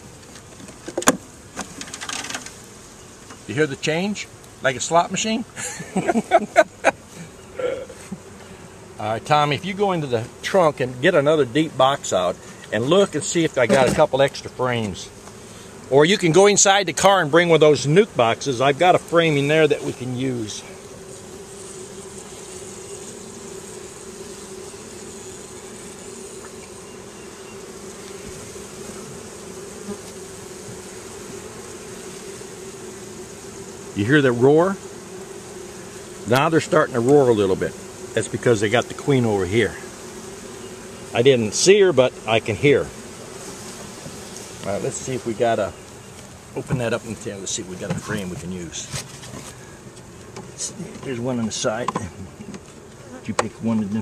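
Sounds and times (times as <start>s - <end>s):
bees humming: 0.0s - 54.0s
honeybees buzzing: 0.0s - 54.0s.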